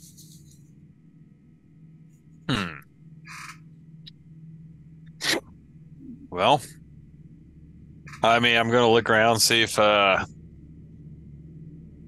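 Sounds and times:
faint background hum: 0:00.0 - 0:12.0.

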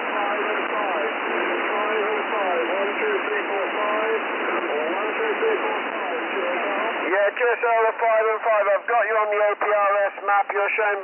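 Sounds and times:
radio band noise hiss: 0:00.0 - 0:11.0
weak garbled radio voices: 0:00.0 - 0:11.0.

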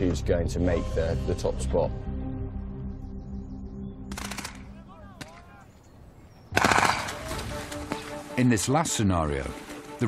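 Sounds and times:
automatic gunfire: 0:04.1 - 0:04.7, 0:06.6 - 0:07.3.

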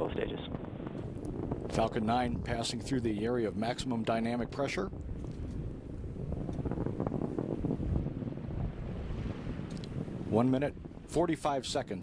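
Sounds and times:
rocket engines roaring: 0:00.0 - 0:12.0.

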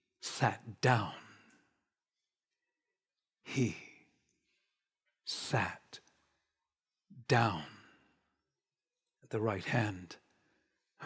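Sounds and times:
man speaking: 0:00.2 - 0:01.3, 0:03.5 - 0:03.9, 0:05.3 - 0:06.0, 0:07.2 - 0:07.8, 0:09.3 - 0:10.2.

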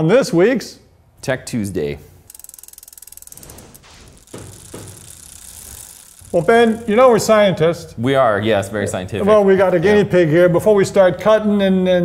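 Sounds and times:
rapid ratcheting clicks: 0:02.2 - 0:07.5.

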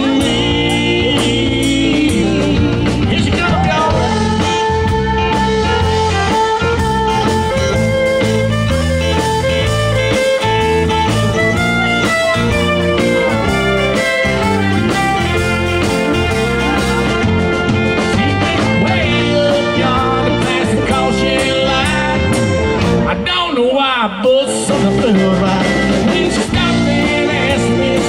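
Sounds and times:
steady drum beat: 0:00.0 - 0:23.3, 0:24.2 - 0:28.0
bass guitar: 0:00.0 - 0:28.0
guitars: 0:00.0 - 0:28.0
lead melody with bending notes: 0:00.0 - 0:28.0.

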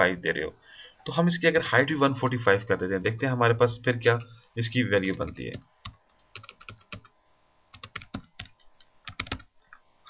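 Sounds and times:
computer keyboard typing: 0:05.1 - 0:07.1, 0:07.7 - 0:09.5.

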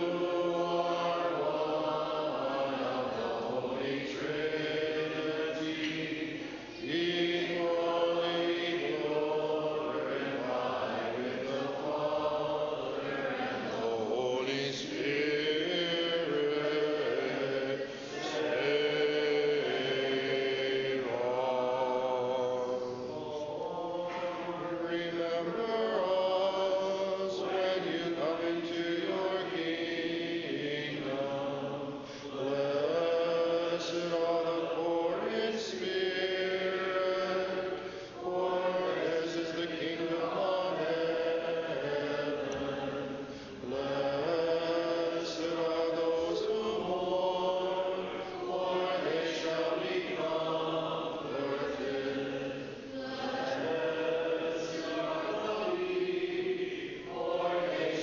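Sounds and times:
choir chanting a cappella: 0:00.0 - 0:58.0.

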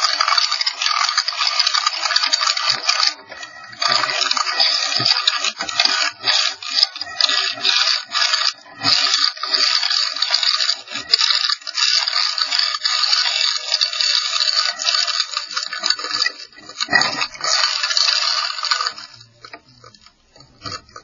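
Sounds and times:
harsh scraping and rattling: 0:00.0 - 0:21.0.

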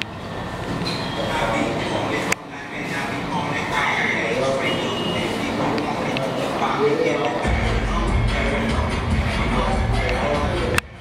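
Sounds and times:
indistinct voices: 0:00.7 - 0:11.0
steady rumble: 0:07.4 - 0:11.0.

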